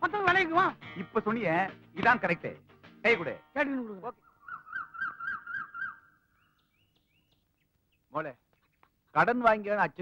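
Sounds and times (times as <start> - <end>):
faint bird chirps: 4.0 - 9.2.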